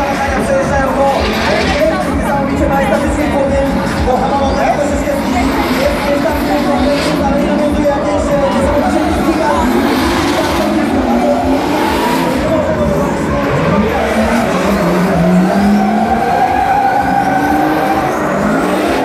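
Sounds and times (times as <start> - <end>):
car engines revving hard: 0.0 - 19.0
tyre squeal: 13.6 - 19.0.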